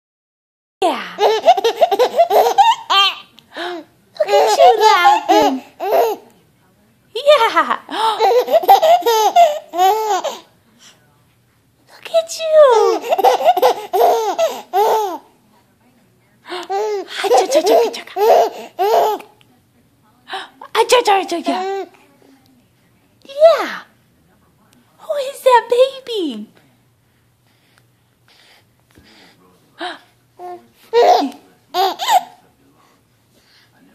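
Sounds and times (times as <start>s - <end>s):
baby laughing: 1.2s - 6.3s, 7.4s - 10.5s, 12.6s - 15.3s, 16.7s - 19.4s, 30.4s - 32.4s.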